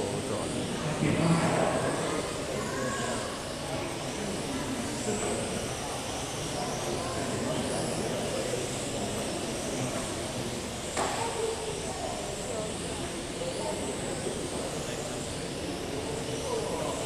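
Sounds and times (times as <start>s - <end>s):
murmur of voices in a hall: 0.0s - 17.0s.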